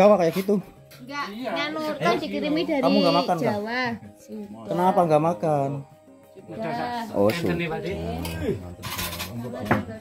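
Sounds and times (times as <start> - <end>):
cutlery and dishes clinking: 8.2 - 10.0.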